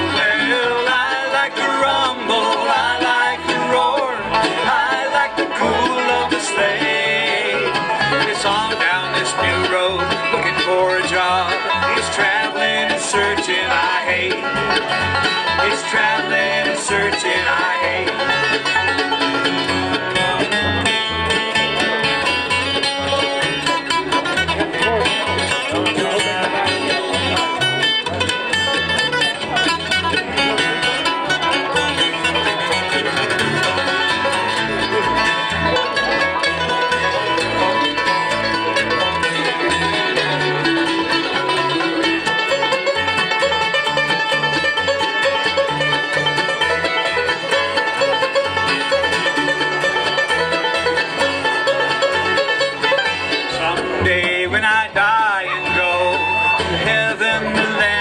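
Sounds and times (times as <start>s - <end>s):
acoustic guitar: 0.0s - 58.0s
banjo: 0.0s - 58.0s
fiddle: 0.0s - 58.0s
mandolin: 0.0s - 58.0s
upright bass: 0.0s - 58.0s.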